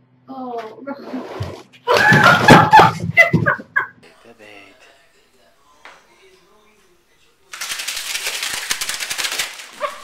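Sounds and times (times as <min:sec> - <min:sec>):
woman laughing loudly: 0:01.9 - 0:04.0.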